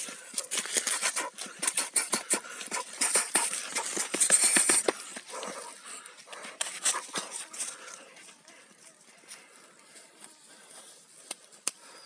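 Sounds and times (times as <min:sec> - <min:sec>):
short sharp breaths: 0:00.0 - 0:08.3, 0:09.3 - 0:12.0.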